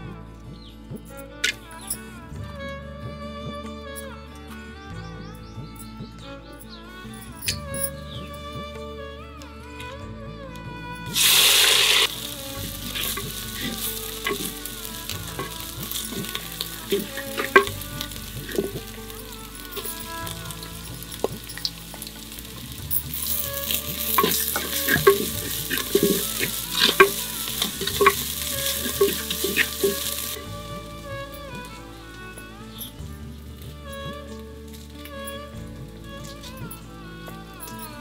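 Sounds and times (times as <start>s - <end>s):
loud hissing burst: 11.1s - 32.3s
masala sizzling in a pot: 11.1s - 36.4s
wooden spatula scraping a pot: 11.2s - 30.6s.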